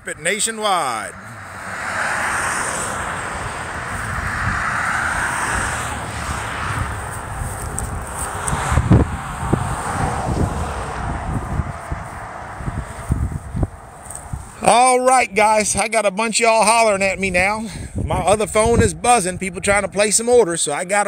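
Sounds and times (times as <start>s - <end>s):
wind buffeting a microphone: 2.4s - 14.7s, 16.7s - 20.4s.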